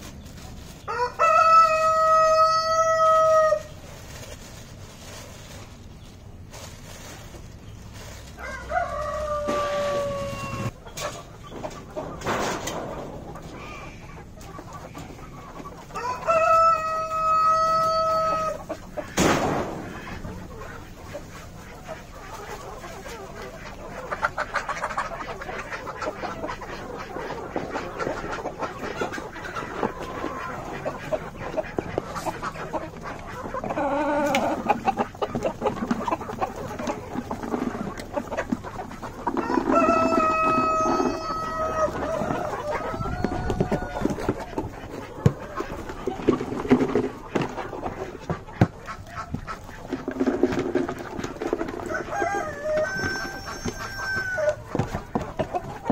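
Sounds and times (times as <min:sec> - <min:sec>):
hens clucking: 0:00.0 - 0:55.9
rooster crowing: 0:00.9 - 0:03.7, 0:08.4 - 0:10.7, 0:15.9 - 0:18.6, 0:39.4 - 0:44.2, 0:51.8 - 0:54.6.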